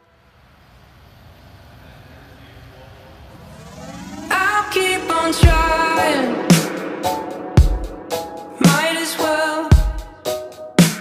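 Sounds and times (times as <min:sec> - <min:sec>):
faint rising tones: 0:01.4 - 0:09.6
low electronic rumbling: 0:03.1 - 0:08.6.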